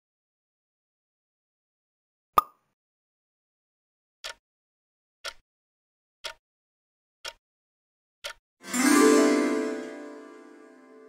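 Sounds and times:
pop sound effect: 2.4s - 2.6s.

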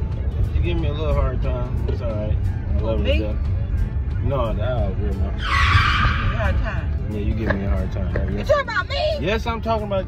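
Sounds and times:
tyre screech: 5.3s - 6.9s.

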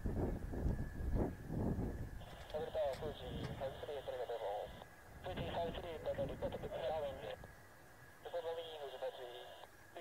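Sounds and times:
faint jet engine rumble: 0.0s - 10.0s
radio voice transmissions: 2.2s - 7.5s, 8.2s - 10.0s.

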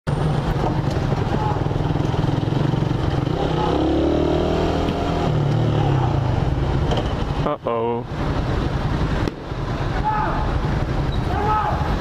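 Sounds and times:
motorcycle engine running: 0.1s - 7.5s.

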